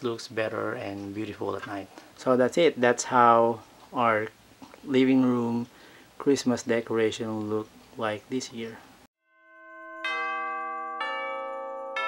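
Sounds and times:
bell-toned instrumental music: 9.2 - 12.0.

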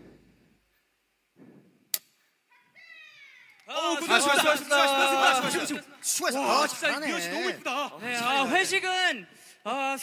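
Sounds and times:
loud voices: 3.7 - 8.9.

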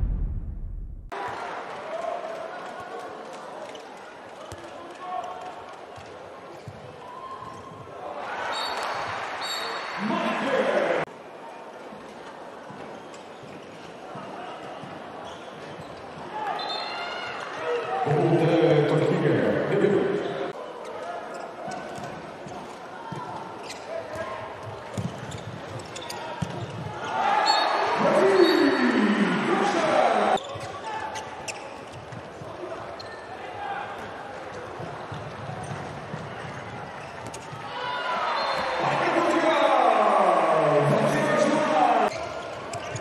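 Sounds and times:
shoe squeaks: 23.6 - 23.9, 25.0 - 26.5, 30.4 - 32.1, 33.0 - 33.3, 42.1 - 43.0.

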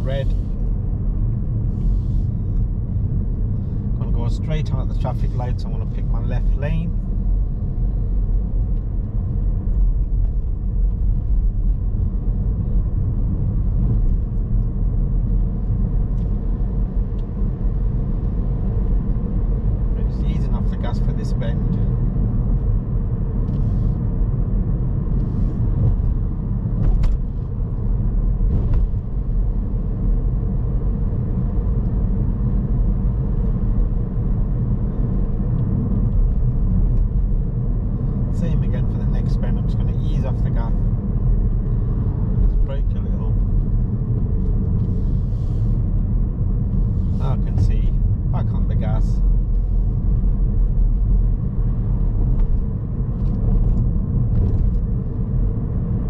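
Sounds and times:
car engine and tyres rumbling: 0.0 - 56.0.

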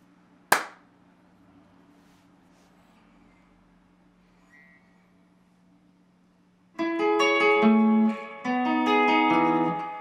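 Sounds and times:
sharp hand clap: 0.5 - 0.9.

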